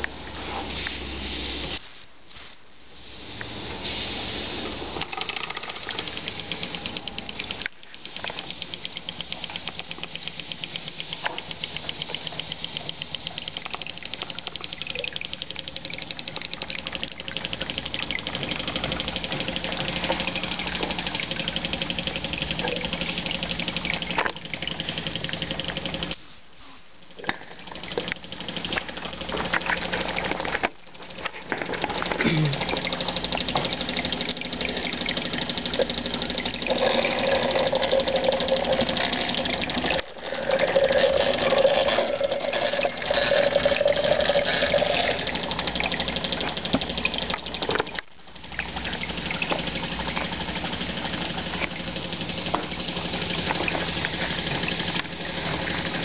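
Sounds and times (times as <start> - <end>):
steam and gas burner hiss: 3.0 - 5.0
model steam engine chuffing: 5.7 - 47.8, 48.4 - 56.0.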